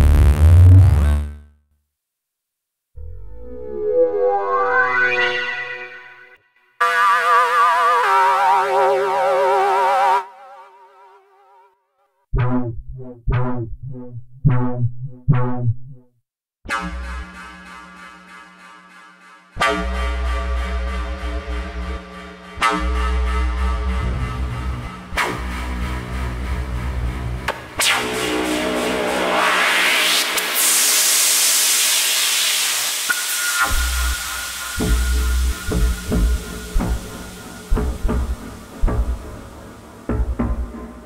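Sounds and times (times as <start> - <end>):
bright synthesizer tone with vibrato: 3.0 - 6.4
synthesizer note with sweeping overtones: 3.0 - 10.6, 22.8 - 40.5
buzzy synthesizer patch: 27.6 - 32.4, 33.1 - 39.7
low synth bass note: 33.6 - 40.7.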